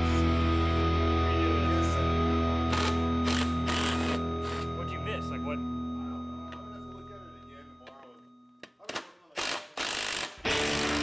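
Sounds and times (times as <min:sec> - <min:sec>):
impact driver bursts: 0:02.7 - 0:04.6, 0:08.9 - 0:11.0.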